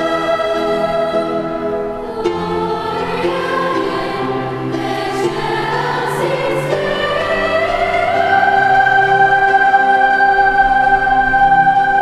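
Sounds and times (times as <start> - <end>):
girls' choir singing: 0.0 - 12.0
organ accompaniment: 0.0 - 12.0.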